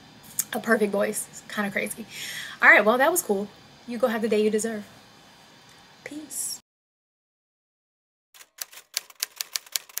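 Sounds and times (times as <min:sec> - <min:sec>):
typewriter key clicks: 0:08.4 - 0:10.0.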